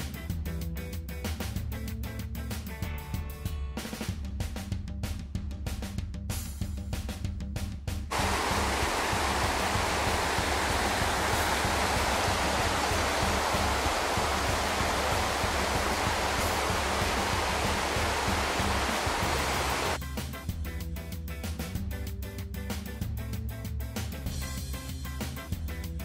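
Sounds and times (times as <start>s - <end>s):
creek rushing over boulders: 8.1s - 20.0s
background music: 8.1s - 26.0s.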